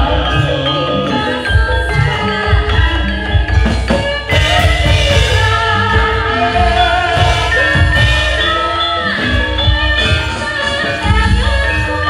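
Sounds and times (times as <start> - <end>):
bronze metallophones and gongs: 0.0 - 12.0.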